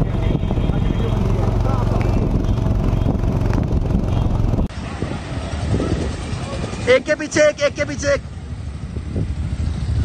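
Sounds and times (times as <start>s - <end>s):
people's voices: 0.0s - 2.7s, 4.8s - 8.5s
motorcycle engines rumbling: 0.0s - 10.0s.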